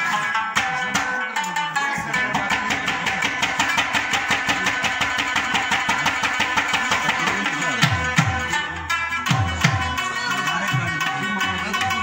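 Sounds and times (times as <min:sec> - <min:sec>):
tabla and rabab playing: 0:00.0 - 0:12.0.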